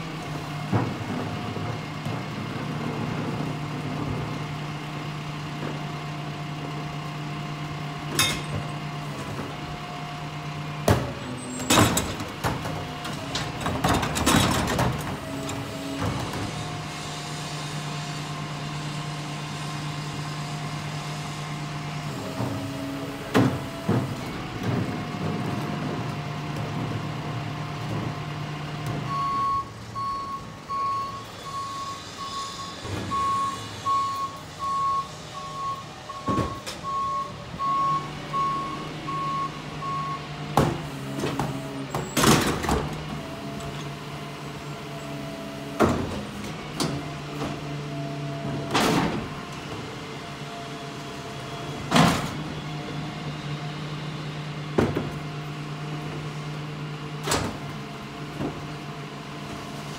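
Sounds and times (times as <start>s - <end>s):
garbage truck engine running: 0.0s - 59.9s
carts clanking against hopper: 8.0s - 9.6s, 10.8s - 16.9s, 40.5s - 44.2s
reverse alarm beeping: 29.1s - 40.2s.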